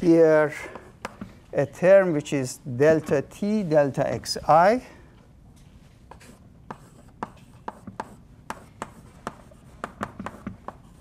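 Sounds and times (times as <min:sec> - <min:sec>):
chalk tapping on blackboard: 0:00.7 - 0:01.2, 0:06.1 - 0:11.0
chalk scratching: 0:06.1 - 0:11.0.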